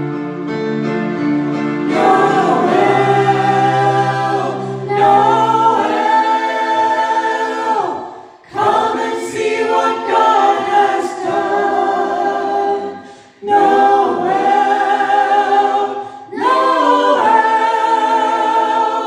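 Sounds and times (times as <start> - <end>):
mixed group singing: 1.8 - 19.0.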